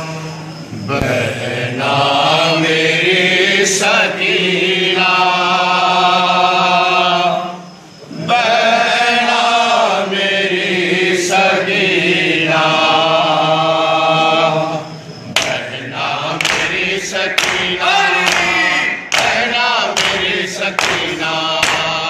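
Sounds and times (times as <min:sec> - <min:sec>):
men chanting in unison: 0:00.0 - 0:22.0
hands slapping chests: 0:15.4 - 0:15.6, 0:16.4 - 0:22.0.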